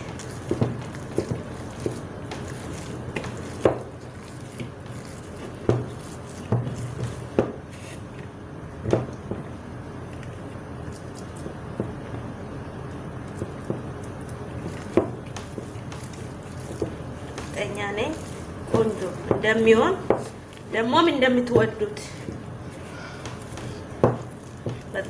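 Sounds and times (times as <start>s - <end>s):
hands squishing wet dough: 0.0s - 25.0s
steady background hum: 0.0s - 25.0s.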